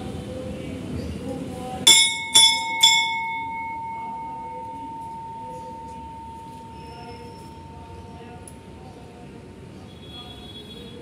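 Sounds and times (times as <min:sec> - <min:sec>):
brass temple bell ringing: 0:01.9 - 0:08.8.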